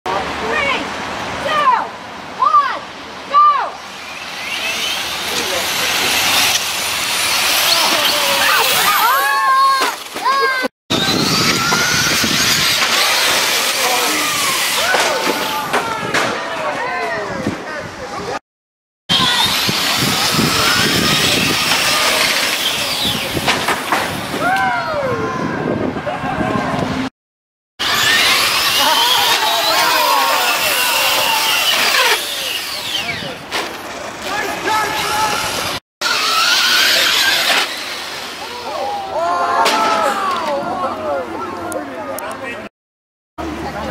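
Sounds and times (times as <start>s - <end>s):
electric motor whines: 10.9s - 14.8s, 19.1s - 23.4s, 27.8s - 33.4s, 36.0s - 38.4s.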